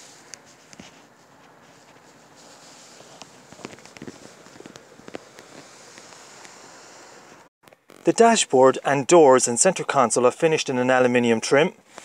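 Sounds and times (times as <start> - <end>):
background hiss: 0.0 - 12.0
faint footsteps: 0.2 - 6.7.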